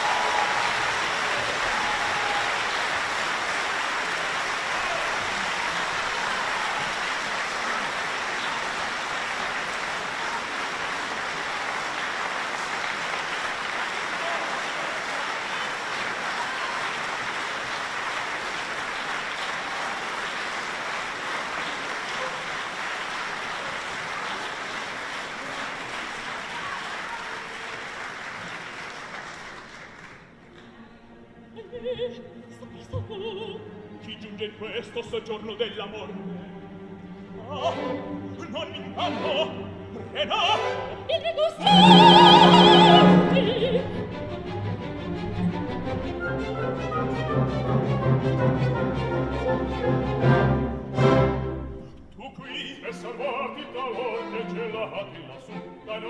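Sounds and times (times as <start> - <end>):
opera music: 0.0 - 28.0, 28.6 - 56.0
audience applauding: 0.0 - 30.8, 41.6 - 43.9.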